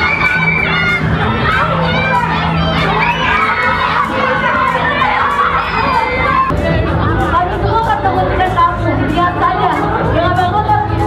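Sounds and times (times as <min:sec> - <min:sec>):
children shouting and screaming: 0:00.0 - 0:07.9.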